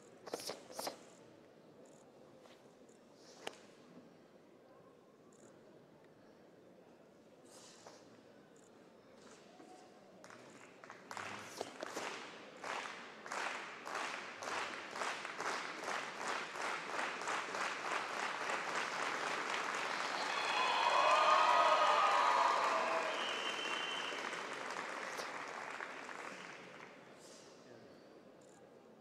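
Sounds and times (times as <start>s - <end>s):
spectators clapping: 10.2s - 27.0s
shouted cheering: 19.4s - 25.4s.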